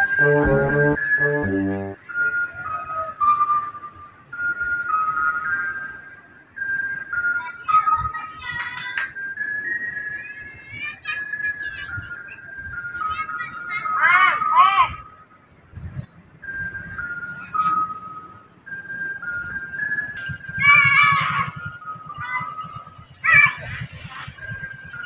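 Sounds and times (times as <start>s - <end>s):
ice cream vendor jingle: 0.0s - 2.0s.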